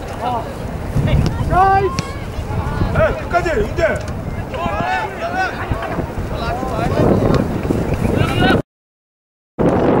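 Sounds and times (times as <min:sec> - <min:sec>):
voices calling out: 0:00.0 - 0:08.6
wind rumbling on microphone: 0:00.0 - 0:08.6, 0:09.6 - 0:10.0.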